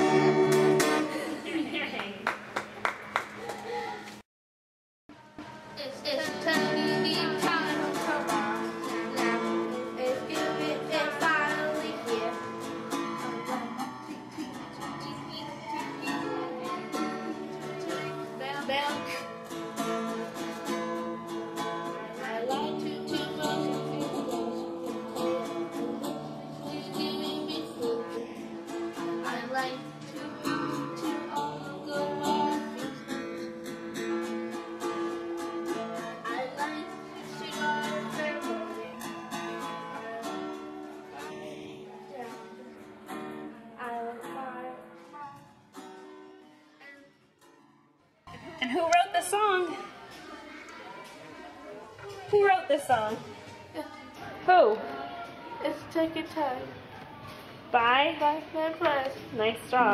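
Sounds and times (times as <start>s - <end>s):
strummed plucked strings: 0.0s - 1.4s
person singing: 5.2s - 19.3s, 21.9s - 33.6s, 35.6s - 42.8s.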